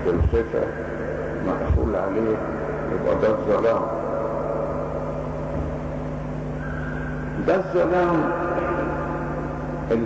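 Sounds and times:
low electrical hum: 0.0 - 10.0
microphone hiss: 0.0 - 10.0.

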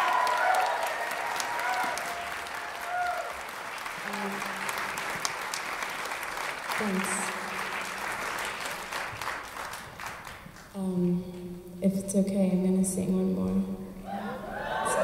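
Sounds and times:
audience applauding: 0.0 - 10.7.

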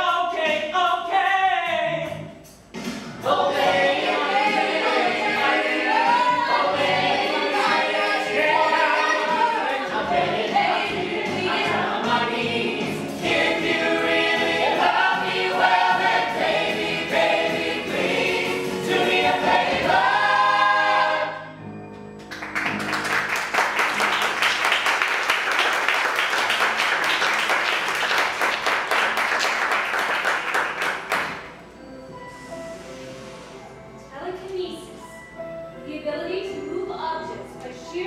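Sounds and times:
ensemble singing in chorus: 3.2 - 21.6
audience applauding: 22.2 - 31.6.

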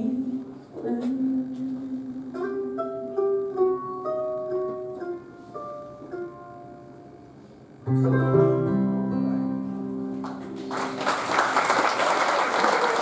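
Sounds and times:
plucked acoustic string notes: 2.3 - 10.6.

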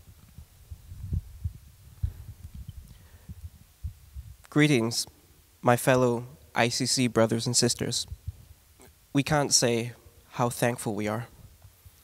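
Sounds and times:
microphone handling thumps: 0.1 - 4.4.

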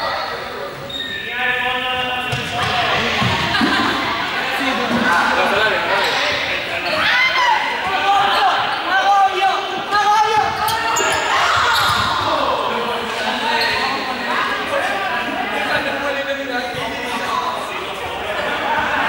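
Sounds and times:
young people shouting and chattering: 0.0 - 19.0.

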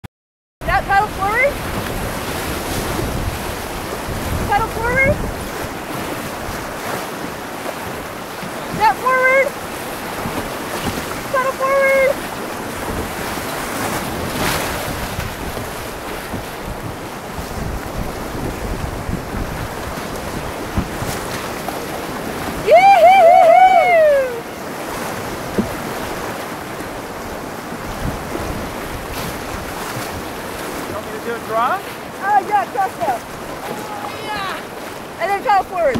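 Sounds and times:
wind on microphone: 0.6 - 31.0
whitewater rushing: 0.6 - 35.9
loud wavering yell: 22.6 - 24.4, 33.6 - 34.7
person shouting: 22.6 - 24.4, 33.6 - 34.7.

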